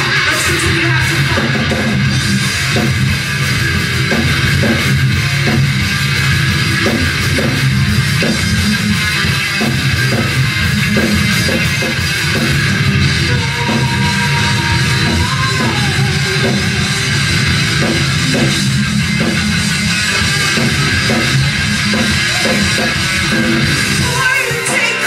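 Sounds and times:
live rock band playing: 0.0 - 25.0
regular drum hits: 0.0 - 25.0.

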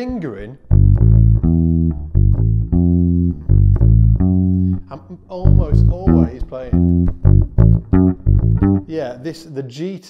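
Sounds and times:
electric bass guitar notes: 0.4 - 9.2.

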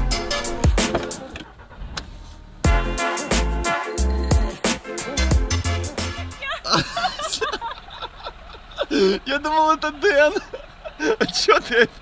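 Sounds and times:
music with bass beat: 0.0 - 1.2, 2.6 - 6.4
car door opening and shutting: 0.0 - 2.6.

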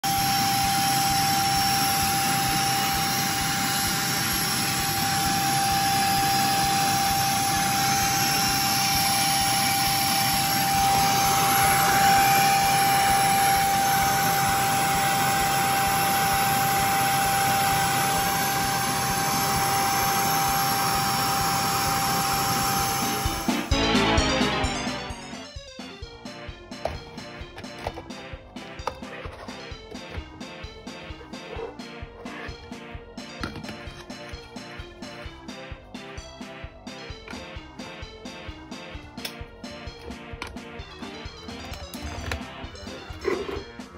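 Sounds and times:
vacuum cleaner running: 0.0 - 25.5, 26.7 - 35.6, 38.7 - 43.9.

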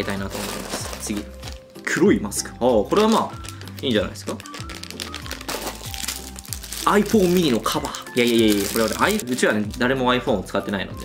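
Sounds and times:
plastic bag crinkling: 0.0 - 10.2
background music: 0.0 - 11.0
person speaking: 6.8 - 11.0.

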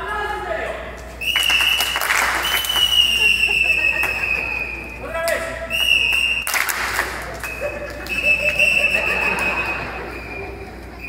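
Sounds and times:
high whistle blasts: 1.2 - 5.0, 5.7 - 6.6, 7.4 - 11.0.

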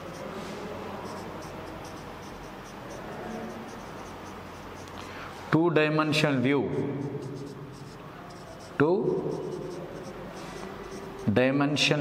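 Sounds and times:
marker pen writing on whiteboard: 0.0 - 5.1, 6.8 - 11.4.

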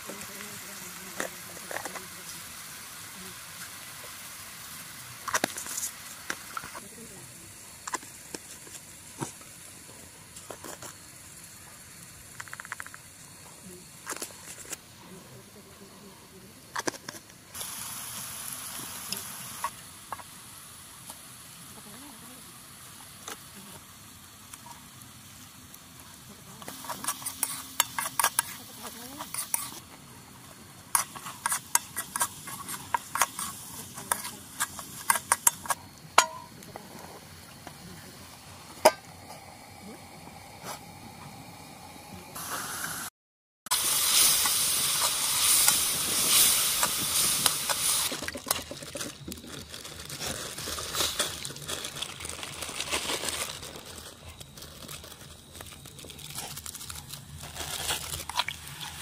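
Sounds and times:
hot pan sizzling: 0.0 - 15.0, 16.7 - 43.1, 43.7 - 59.0
steel cookware clinking: 31.0 - 36.6.

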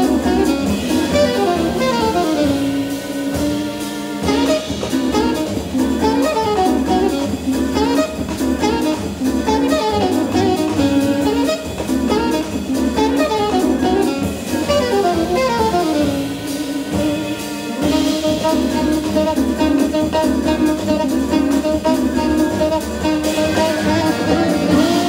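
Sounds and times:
double bass: 0.0 - 25.0
drum kit with cymbal strokes: 0.0 - 25.0
saxophone melody: 0.0 - 25.0.

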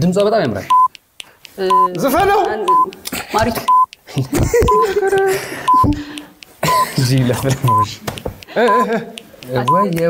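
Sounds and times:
short high electronic beeps: 1.7 - 1.9
people talking and laughing: 2.7 - 10.0.

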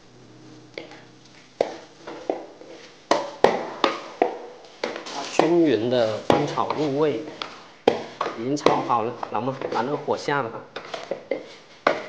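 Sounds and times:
low steady hum: 0.0 - 10.8.

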